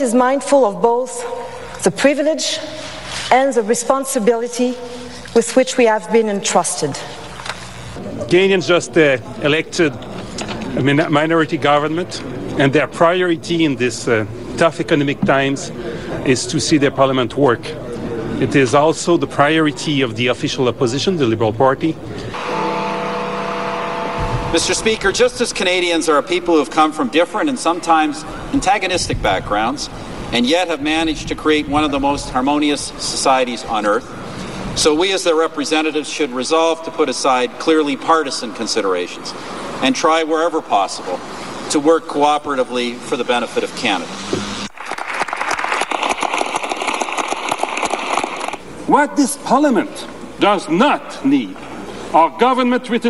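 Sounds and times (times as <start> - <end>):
vehicle engine humming: 22.0 - 34.8
crowd applauding: 44.7 - 48.6.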